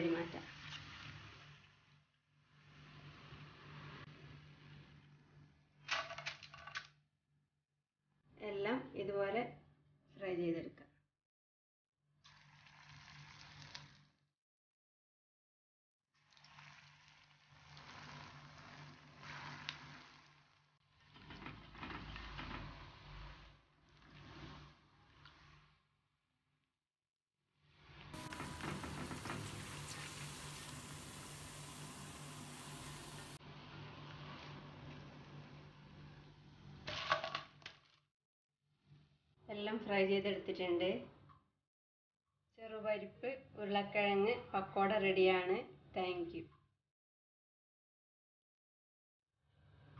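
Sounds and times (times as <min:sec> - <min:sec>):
batter deep-frying in oil: 0:00.0 - 0:05.8, 0:12.2 - 0:14.2, 0:16.2 - 0:26.0, 0:27.6 - 0:37.7
faint steady hiss: 0:28.2 - 0:33.4.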